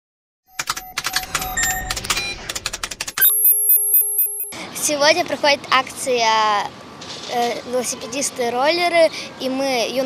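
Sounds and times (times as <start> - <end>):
pulsing electronic beeps: 0.5 - 4.6
synthetic clicks and ticks: 0.5 - 4.6.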